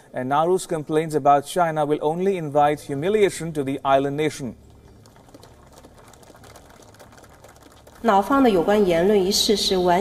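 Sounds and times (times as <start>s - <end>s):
faint low hum: 2.0s - 10.0s.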